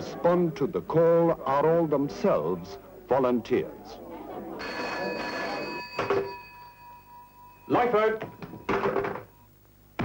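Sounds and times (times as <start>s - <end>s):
telephone bell ringing: 4.6s - 9.5s.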